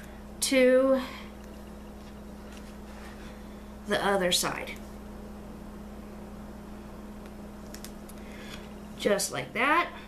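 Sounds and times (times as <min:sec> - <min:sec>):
quiet low hum: 0:00.0 - 0:10.0.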